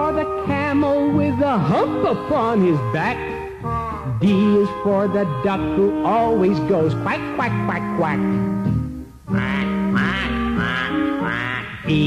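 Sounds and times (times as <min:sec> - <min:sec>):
children's song music: 0:00.0 - 0:12.0
duck quacks: 0:09.3 - 0:12.0.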